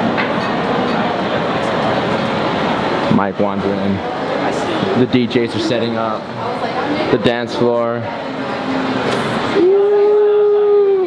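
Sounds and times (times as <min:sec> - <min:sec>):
indistinct room chatter: 0:00.0 - 0:11.0.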